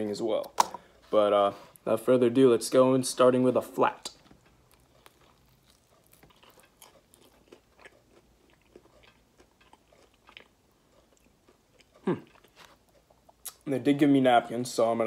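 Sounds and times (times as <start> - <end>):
chewing crunchy chicken wing: 4.2 - 13.6.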